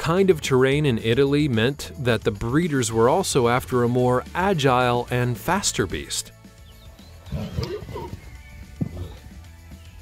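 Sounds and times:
background music: 0.0s - 10.0s
horse crying roughly: 7.2s - 9.3s.

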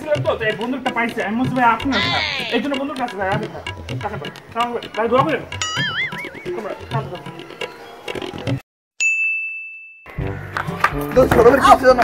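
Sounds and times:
background music: 0.0s - 8.6s, 10.1s - 12.0s
bright ding: 5.6s - 6.8s, 9.0s - 10.2s.

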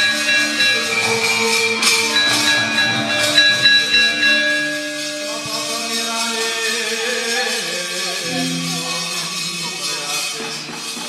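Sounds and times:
sharp high metal strikes: 8.2s - 9.5s
gamelan playing: 8.2s - 9.6s.

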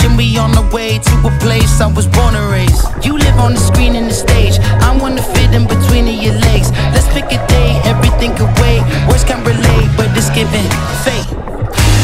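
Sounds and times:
pop song with beat and bass: 0.0s - 12.0s.

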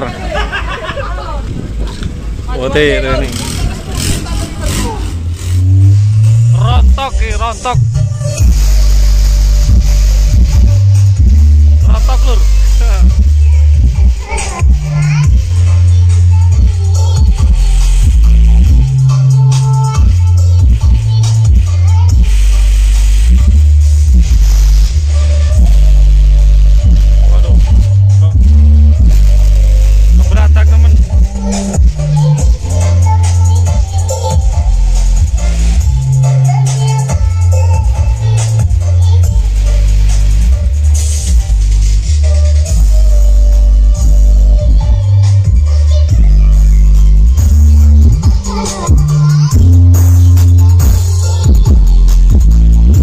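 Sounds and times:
voices: 0.0s - 8.5s, 11.8s - 23.3s, 25.1s - 41.0s, 42.2s - 52.1s
deep bass from subwoofers: 0.0s - 53.0s.

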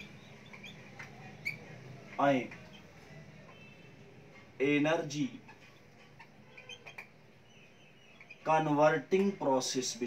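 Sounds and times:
whiteboard marker squeaking: 0.0s - 1.8s, 5.0s - 8.8s.

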